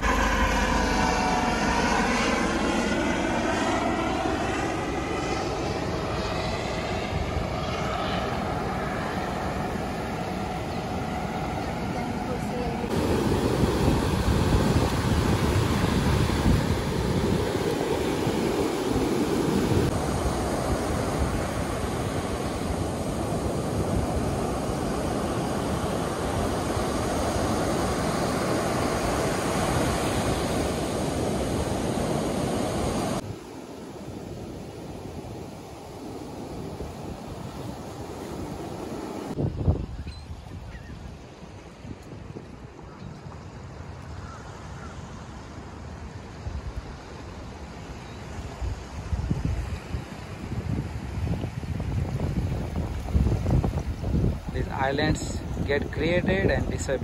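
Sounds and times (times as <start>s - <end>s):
helicopter passing overhead: 0.0s - 39.4s, 50.0s - 57.0s
ocean surf breaking: 0.0s - 39.4s, 48.6s - 57.0s
wind on microphone: 0.0s - 43.3s, 48.1s - 57.0s.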